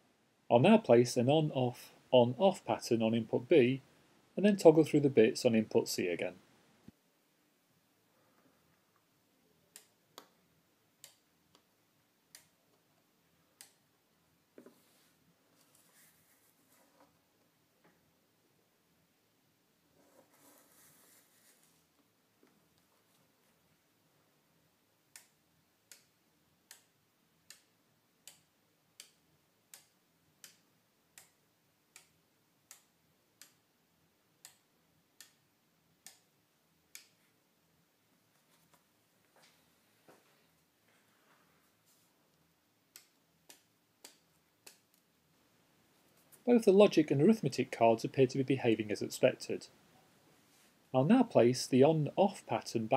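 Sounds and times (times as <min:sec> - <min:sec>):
faint sharp relay clicks: 0:25.1 - 0:33.6, 0:34.4 - 0:36.3, 0:36.9 - 0:37.2, 0:42.9 - 0:45.0.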